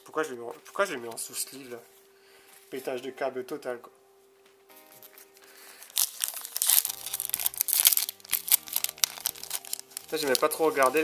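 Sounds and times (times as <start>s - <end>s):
music of held tones: 0.4s - 11.0s
foil wrapper crinkling and tearing: 5.0s - 11.0s.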